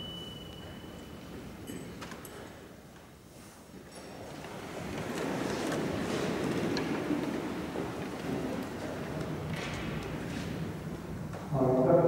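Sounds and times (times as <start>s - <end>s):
shuffling feet: 0.4s - 11.6s.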